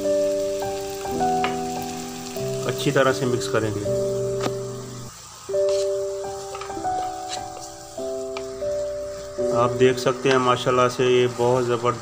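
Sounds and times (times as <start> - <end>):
music of slow held notes: 0.0 - 12.0
spatula tapping in frying pan: 6.5 - 7.7, 8.3 - 8.6.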